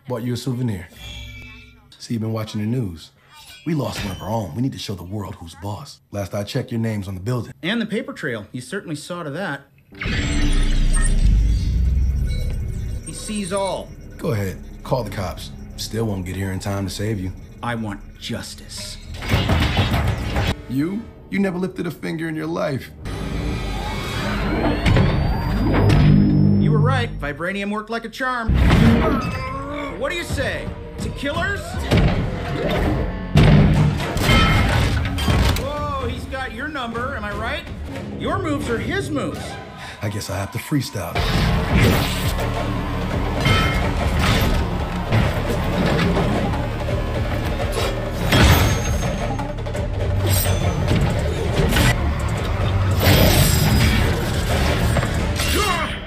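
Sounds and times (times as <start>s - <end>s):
music: 9.8s - 27.5s, 28.5s - 56.0s
robotic suit powering up whine: 23.1s - 27.2s.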